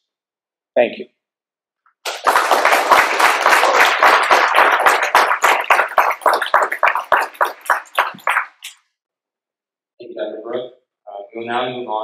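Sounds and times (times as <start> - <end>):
audience applauding: 2.0 - 8.7.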